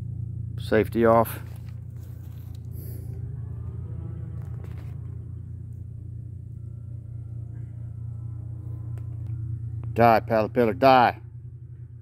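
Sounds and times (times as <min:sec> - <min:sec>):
faint rumble: 0:00.0 - 0:12.0
low mechanical hum: 0:00.0 - 0:12.0.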